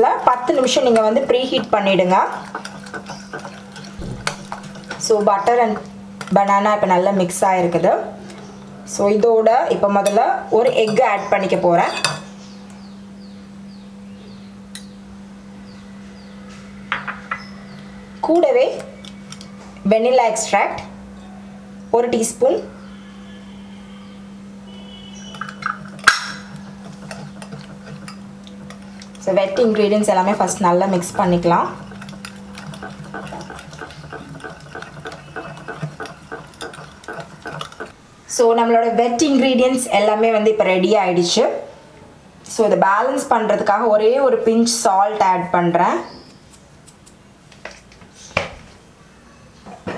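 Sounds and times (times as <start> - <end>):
steady low hum: 0.0 - 48.1
whisk beating batter: 0.1 - 6.4, 25.3 - 38.0
whisk tapping glass bowl: 0.8 - 5.8, 25.3 - 30.4, 31.5 - 37.9
glass bowls clinking: 11.8 - 12.3.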